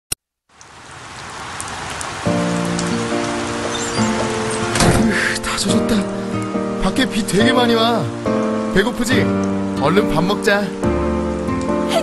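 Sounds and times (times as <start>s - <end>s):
heavy rain: 0.5s - 12.0s
music with sustained notes: 2.2s - 12.0s.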